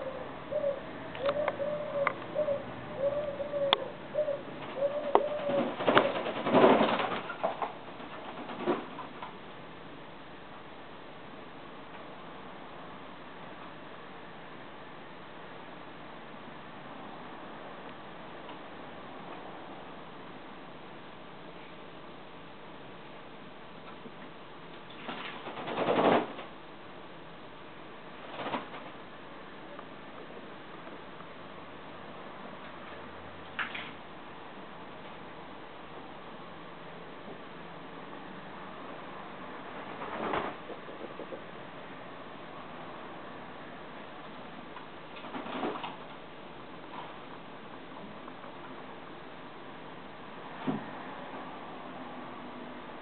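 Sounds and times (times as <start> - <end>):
dove cooing: 0.0 - 7.4, 40.5 - 41.6
wings flapping: 4.6 - 9.3, 24.9 - 26.5, 28.2 - 29.0, 39.8 - 41.3, 45.1 - 46.1
birds splashing wings in water: 5.2 - 8.9.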